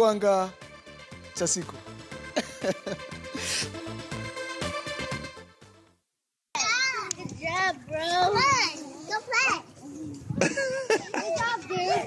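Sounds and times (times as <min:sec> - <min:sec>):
small children calling and squealing: 0:06.6 - 0:10.4, 0:11.0 - 0:12.0.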